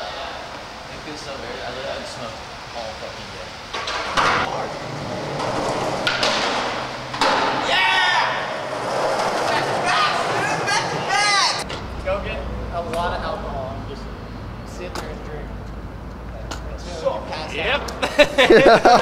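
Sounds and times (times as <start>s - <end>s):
sharp knocks: 5.4s - 7.7s
people squealing and whooping: 7.5s - 11.6s.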